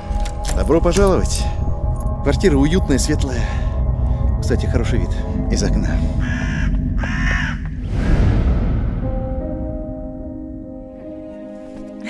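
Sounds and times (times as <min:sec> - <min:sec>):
deep low boom: 0:04.3 - 0:10.6
crow cawing: 0:06.1 - 0:07.8.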